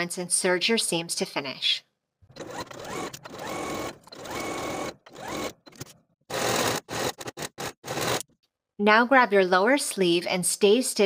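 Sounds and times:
sewing machine motor whine: 0:02.3 - 0:05.6, 0:06.3 - 0:08.2.

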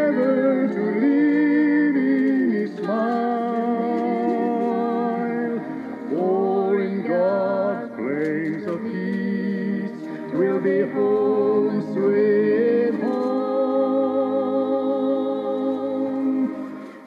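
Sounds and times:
two voices singing in harmony: 0:00.0 - 0:17.0.

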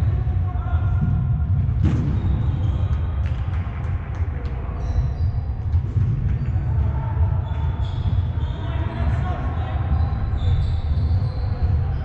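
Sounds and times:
distant players' voices: 0:00.0 - 0:12.0.

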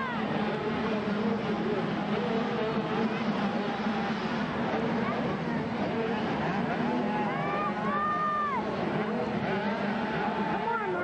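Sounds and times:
motocross bikes revving: 0:00.0 - 0:11.0.

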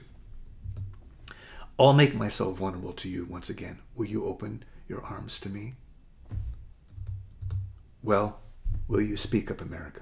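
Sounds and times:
soft low thumps: 0:06.2 - 0:08.0, 0:08.6 - 0:09.0
computer keyboard clicks: 0:06.9 - 0:07.7.

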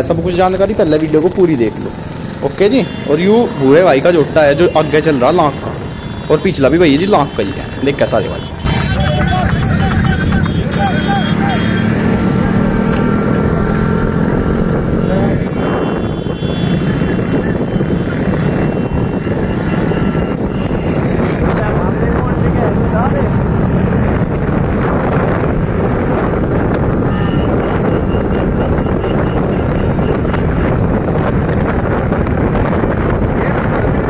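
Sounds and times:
voices calling out: 0:01.6 - 0:14.0
wind noise on microphone: 0:11.9 - 0:34.0.

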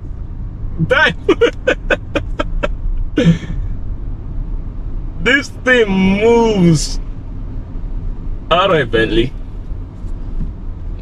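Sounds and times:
engine and road noise in car: 0:00.0 - 0:11.0
man laughing: 0:00.8 - 0:03.6.

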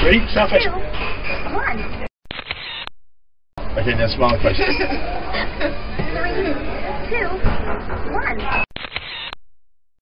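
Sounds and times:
camera shutter click: 0:02.3 - 0:02.9, 0:08.8 - 0:09.4.

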